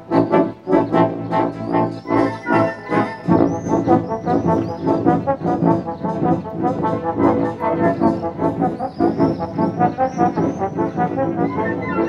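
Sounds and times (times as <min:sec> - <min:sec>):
wind band playing: 0:00.0 - 0:12.0.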